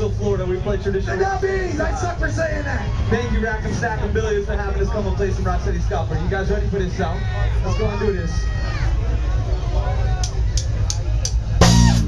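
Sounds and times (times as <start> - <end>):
drum kit beat: 10.6 - 12.0
full-band hit with horns: 11.6 - 12.0
ska band playing live: 11.6 - 12.0.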